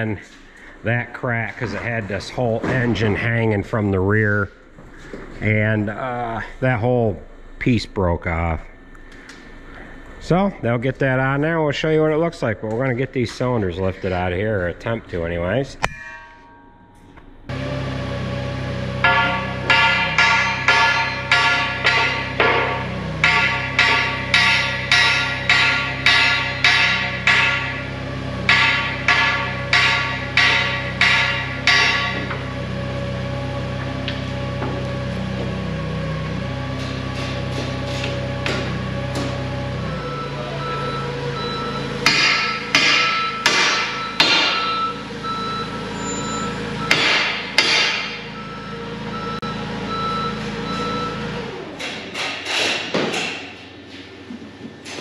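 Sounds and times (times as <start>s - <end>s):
steady machine hum: 0.0s - 52.3s
steel bar striking metal: 15.8s - 17.5s, 19.0s - 32.5s, 42.0s - 44.9s, 46.0s - 48.4s.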